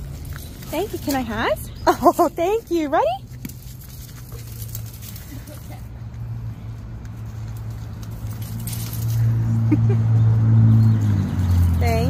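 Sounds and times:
dog paws pattering on gravel: 0.0 - 5.8, 6.6 - 9.3.

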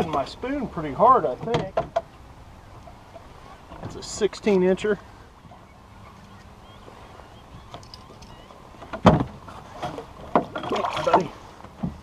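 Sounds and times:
wind and water rumble: 0.0 - 12.0
faint bird chirps: 5.4 - 8.7.

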